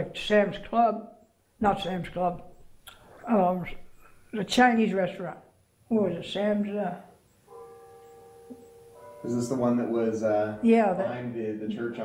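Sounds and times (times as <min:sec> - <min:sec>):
faint steady ringing tone: 0:06.5 - 0:12.0.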